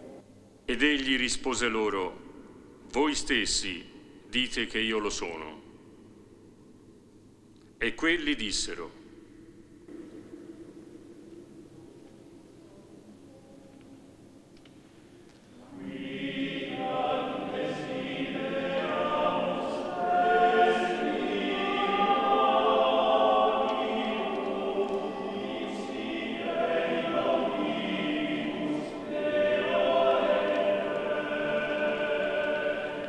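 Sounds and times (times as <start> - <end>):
male choir singing a cappella: 15.6 - 33.0.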